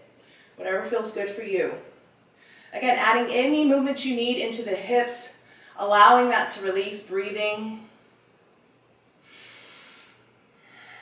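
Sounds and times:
woman breathing: 0.2 - 0.6, 1.9 - 2.8, 5.4 - 5.8, 9.2 - 11.0.

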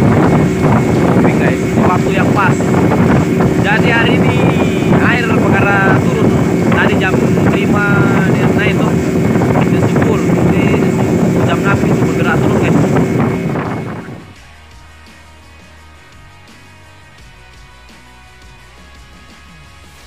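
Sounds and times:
wind and water rushing: 0.0 - 14.4
boat engine running: 0.0 - 14.9.

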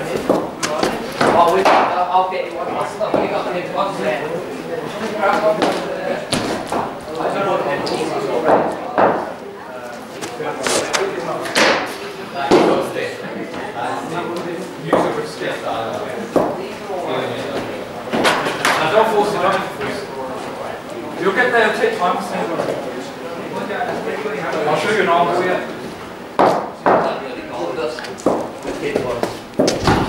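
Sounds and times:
voices talking in echoing hall: 0.0 - 30.0.

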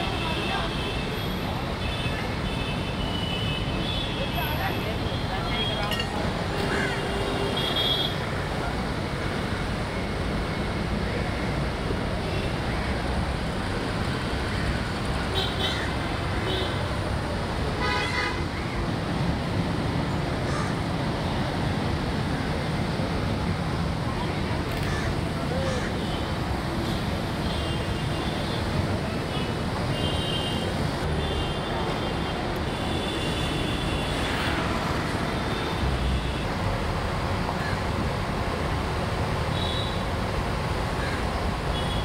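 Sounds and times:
street traffic rumbling: 0.0 - 42.0
vehicle horns honking: 17.8 - 18.4.

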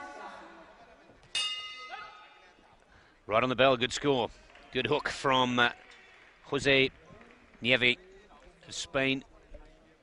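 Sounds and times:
boxing ring bell ringing: 1.4 - 2.4.

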